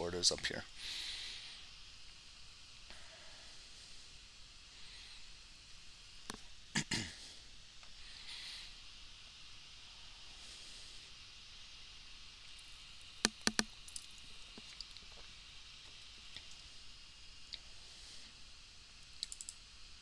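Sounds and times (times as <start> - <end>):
faint steady hiss: 0.0 - 20.0
mouse clicks: 13.2 - 13.7.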